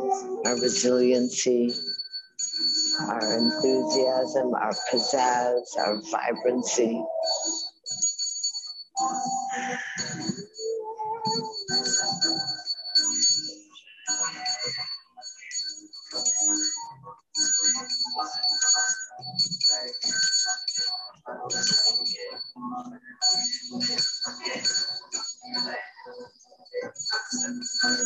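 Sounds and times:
small hand bell ringing: 7.2 - 10.6, 11.2 - 22.5, 23.2 - 25.8, 26.8 - 28.0.

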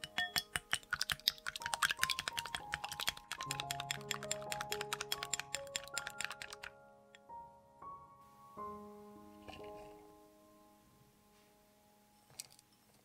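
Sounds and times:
utensil clicking against glass bowl: 0.0 - 6.7
background music: 0.0 - 13.0.

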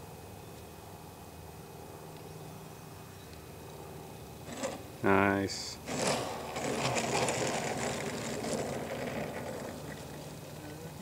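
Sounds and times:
wheels rolling over grass: 4.4 - 11.0.

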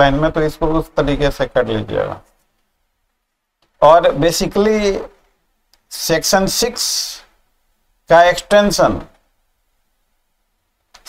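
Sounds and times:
man speaking: 0.0 - 2.3, 3.8 - 5.2, 5.9 - 7.4, 8.0 - 9.2.

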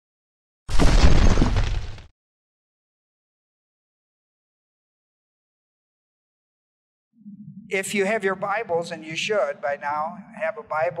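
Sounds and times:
stone cracking and breaking: 0.7 - 2.1.

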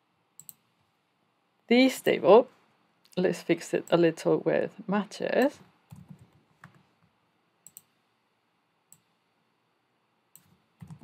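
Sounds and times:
keyboard and mouse clicks: 0.4 - 0.7, 5.4 - 6.9, 7.6 - 8.0, 10.4 - 11.0.

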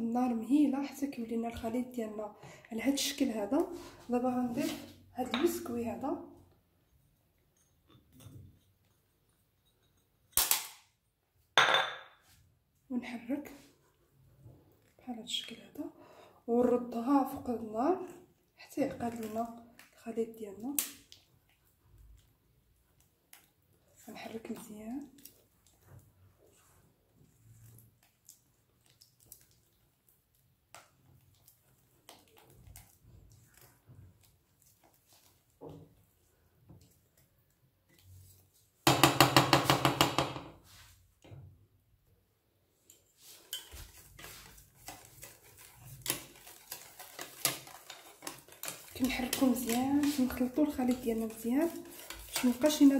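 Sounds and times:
bowl knocking on worktop: 11.6 - 12.2
crumbs pattering into liquid: 20.7 - 38.6, 43.3 - 52.9
spatula scraping a pan: 43.1 - 52.9.

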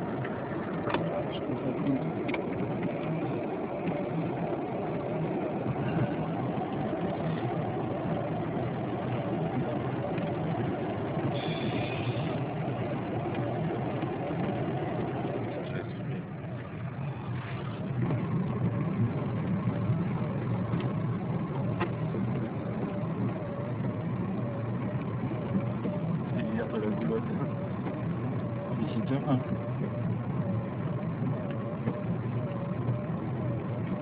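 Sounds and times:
car engine hum: 0.0 - 34.0.

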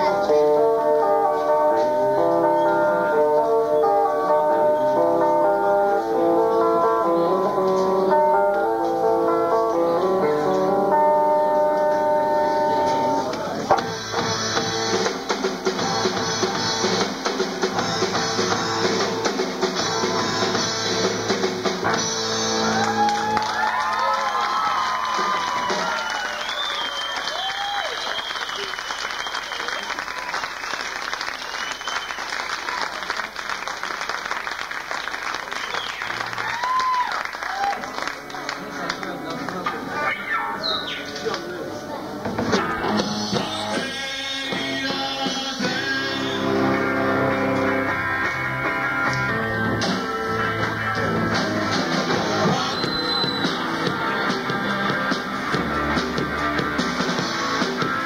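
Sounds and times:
guitar-led band playing: 0.0 - 27.4, 38.0 - 58.0
audience applause and cheering: 22.3 - 39.6.

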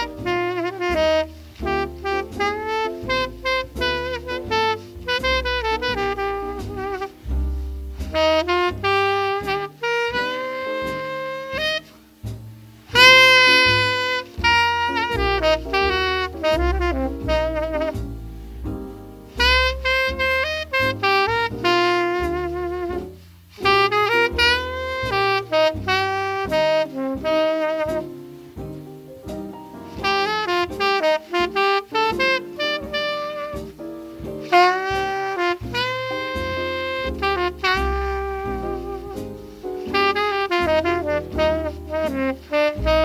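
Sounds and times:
horn playing legato melody: 0.0 - 12.1, 12.9 - 18.4, 19.3 - 28.2, 29.9 - 43.0
walking bass line: 0.0 - 43.0.

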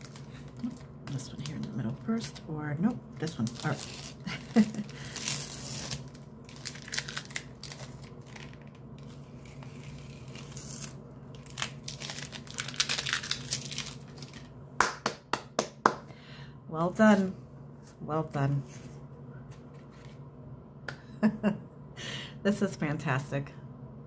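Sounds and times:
masking tape being peeled: 3.4 - 14.5.

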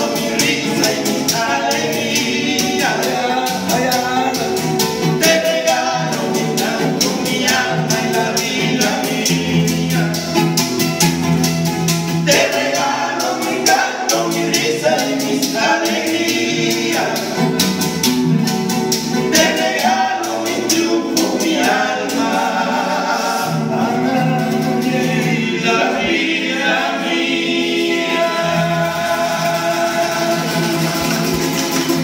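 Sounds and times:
men singing together: 0.0 - 10.7, 12.1 - 17.9, 19.0 - 32.0
shaker ticking: 0.0 - 23.1
guacharaca scraping: 0.0 - 32.0
strummed acoustic guitars: 0.0 - 32.0.

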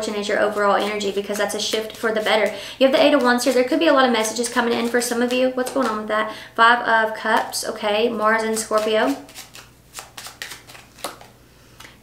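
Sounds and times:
cards flicking and snapping: 8.8 - 12.0.

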